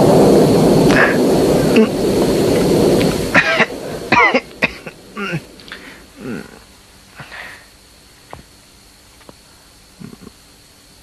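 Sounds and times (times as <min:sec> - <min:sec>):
heavy rumbling noise: 0:00.0 - 0:10.4
man coughing and clearing throat: 0:03.4 - 0:05.4.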